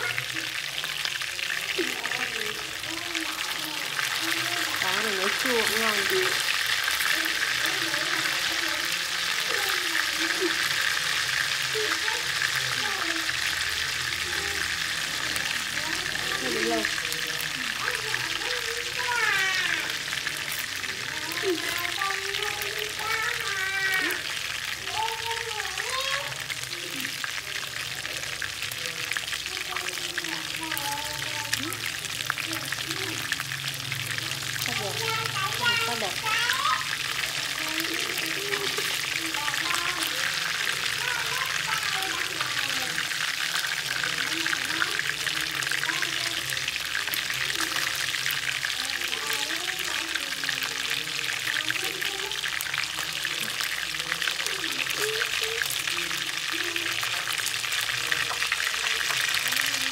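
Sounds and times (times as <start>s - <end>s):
fish sizzling in hot oil: 0.0s - 59.9s.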